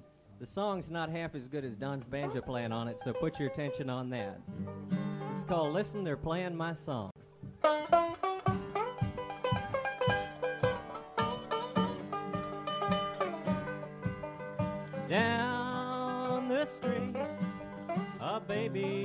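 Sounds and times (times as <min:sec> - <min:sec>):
banjo picking: 0:01.9 - 0:06.6, 0:07.4 - 0:19.0
acoustic guitar: 0:02.1 - 0:06.4, 0:07.2 - 0:19.0.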